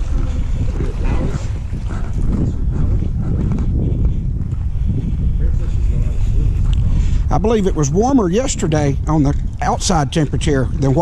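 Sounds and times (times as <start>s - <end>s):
wind buffeting microphone: 0.0s - 11.0s
faint voices talking: 5.0s - 11.0s.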